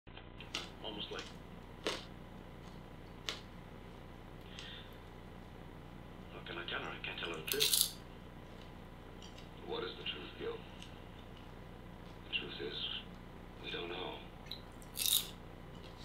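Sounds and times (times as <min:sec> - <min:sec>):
popcorn crunching: 0:00.2 - 0:05.2, 0:06.8 - 0:13.3, 0:14.4 - 0:16.0.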